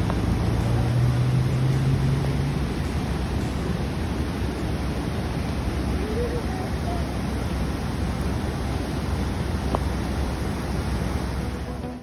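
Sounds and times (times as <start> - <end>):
floodwater rushing across road: 0.0 - 12.0.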